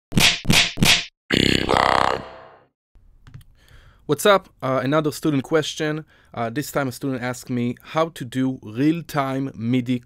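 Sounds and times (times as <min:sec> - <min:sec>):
sharp percussive hits: 0:00.1 - 0:01.1.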